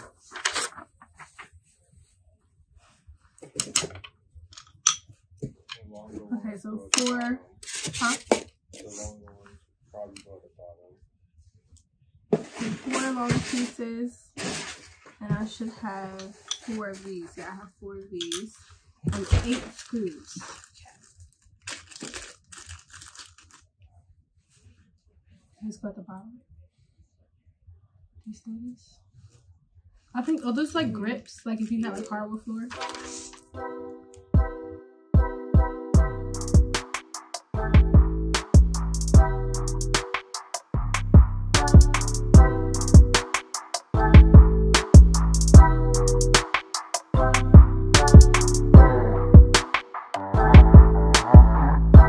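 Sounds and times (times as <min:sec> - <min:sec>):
plastic and paper rustling: 0:00.0 - 0:02.2, 0:12.4 - 0:13.8, 0:14.4 - 0:17.8, 0:18.4 - 0:23.6
plastic bag crinkling: 0:19.1 - 0:23.6.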